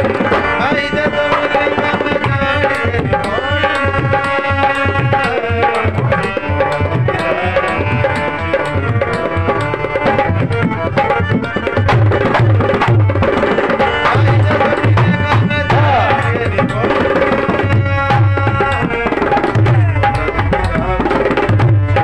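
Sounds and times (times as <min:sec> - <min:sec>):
dholak drumming: 0:00.0 - 0:22.0.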